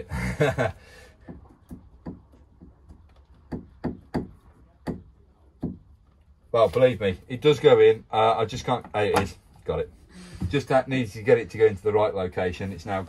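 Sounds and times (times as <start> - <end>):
person laughing: 0.0 - 0.8.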